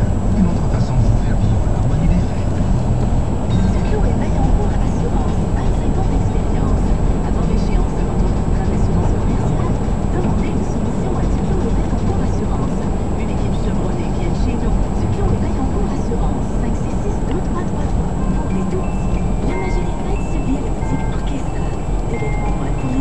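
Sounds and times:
car engine rumble: 0.0s - 23.0s.

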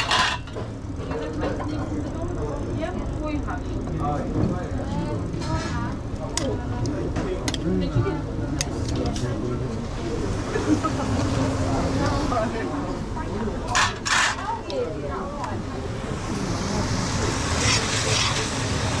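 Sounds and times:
background chatter: 0.0s - 19.0s.

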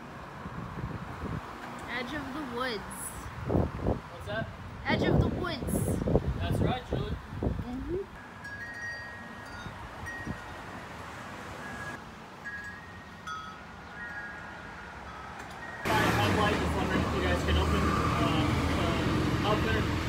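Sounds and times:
metal wind chime ringing: 8.2s - 11.0s, 11.6s - 16.0s.

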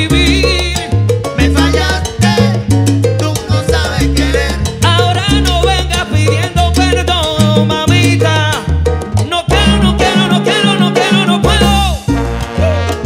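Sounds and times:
salsa orchestra playing: 0.0s - 13.0s.

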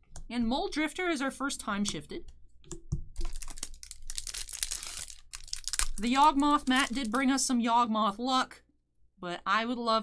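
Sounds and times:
foil wrapper crinkling and tearing: 3.2s - 7.4s.

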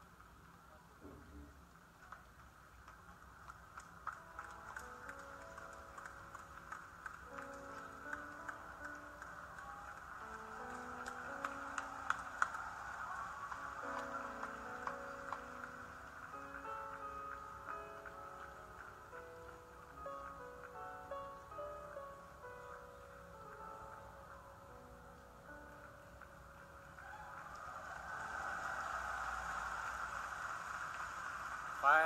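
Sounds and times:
slow sustained music: 3.8s - 32.0s.

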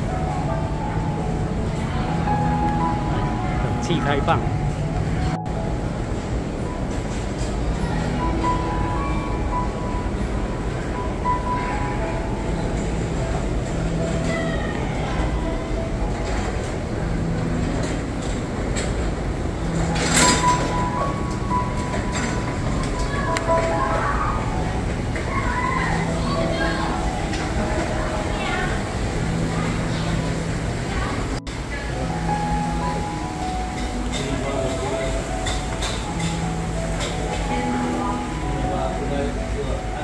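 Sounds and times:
simple background melody: 0.0s - 40.0s.

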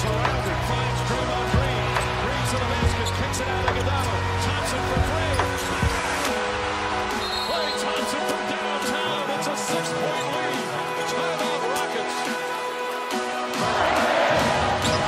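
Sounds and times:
arena crowd noise: 0.0s - 15.0s.

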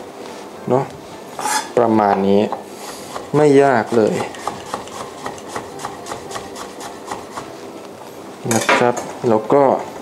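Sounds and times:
knife tapping on wooden board: 3.9s - 7.5s.

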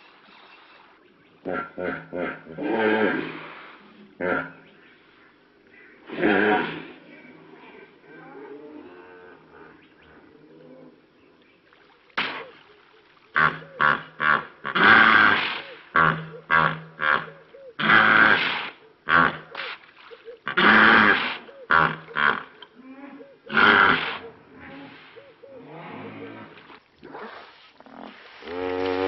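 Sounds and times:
hippopotamus grunting: 1.4s - 4.8s, 6.0s - 11.2s, 13.3s - 19.7s, 20.4s - 26.6s, 27.8s - 29.0s
hippopotamus honking: 13.3s - 19.6s.

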